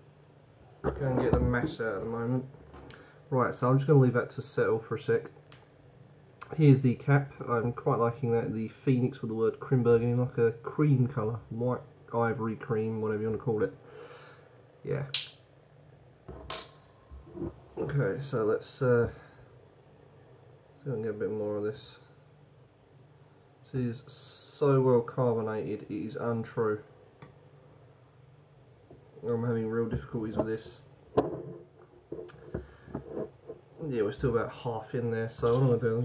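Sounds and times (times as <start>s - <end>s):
glass clink with ring: 15.1s - 15.4s, 16.5s - 16.9s
metal cap clinking on worktop: 16.5s - 16.8s.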